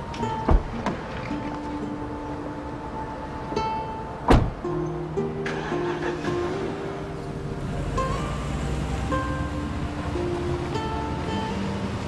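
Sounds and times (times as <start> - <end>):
slow dramatic music: 0.0 - 12.0
car door shutting: 0.4 - 1.6, 4.2 - 4.6.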